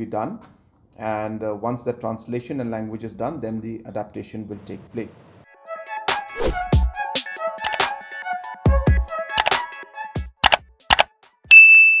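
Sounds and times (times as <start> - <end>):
sharp mouse clicks: 7.6 - 7.8, 9.4 - 9.6, 10.4 - 11.1
notification bell ding: 11.5 - 12.0.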